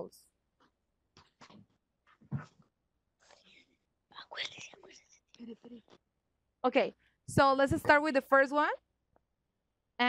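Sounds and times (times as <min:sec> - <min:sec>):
whispered speech: 0:04.1 - 0:05.9.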